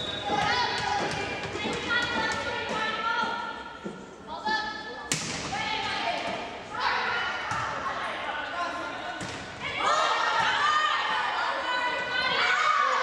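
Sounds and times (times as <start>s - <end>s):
people shouting: 9.6s - 13.0s.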